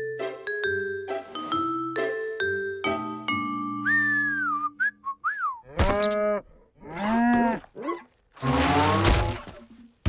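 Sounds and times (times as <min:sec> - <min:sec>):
cartoon character whistling tune: 0:03.8 - 0:05.6.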